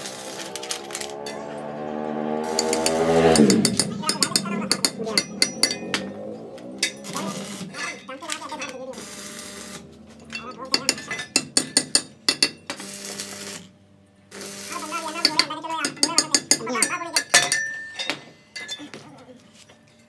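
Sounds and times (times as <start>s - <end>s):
hammer striking metal rivets: 2.4s - 6.2s, 6.8s - 8.8s, 10.3s - 12.8s, 15.2s - 19.0s.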